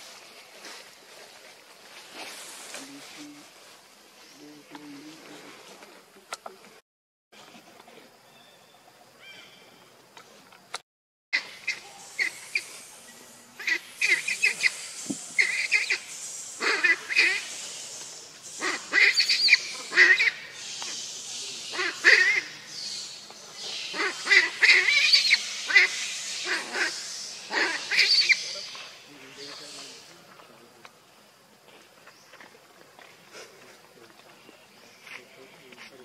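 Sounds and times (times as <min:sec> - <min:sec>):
macaques high-pitched calls: 0:11.4 - 0:12.8, 0:13.6 - 0:30.1.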